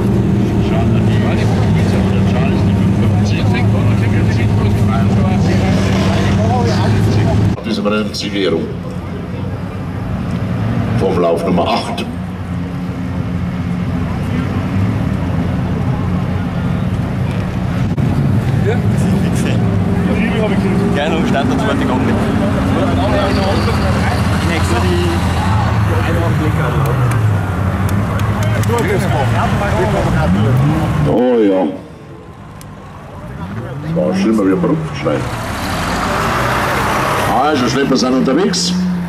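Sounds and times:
vehicle engines revving: 0.0 - 39.0
people talking: 0.6 - 10.0, 11.0 - 12.2, 13.9 - 14.9, 18.5 - 36.4, 37.2 - 38.8.

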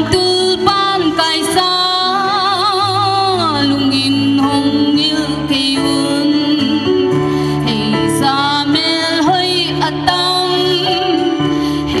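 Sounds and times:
instrumental accompaniment: 0.0 - 12.0
woman singing into microphone: 0.0 - 12.0.

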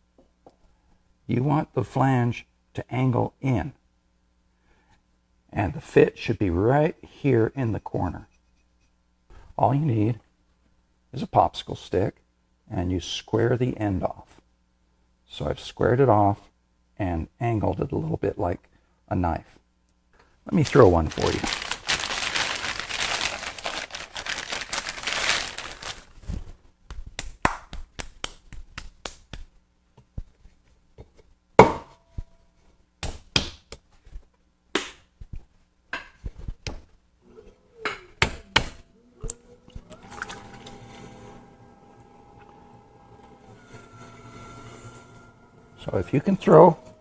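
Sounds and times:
plastic bag crinkling: 20.5 - 26.6
electric motor hum and whine: 38.4 - 47.0.

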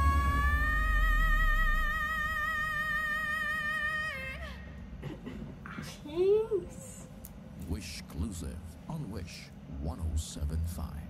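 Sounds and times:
woman singing a high belted note: 0.0 - 4.5.

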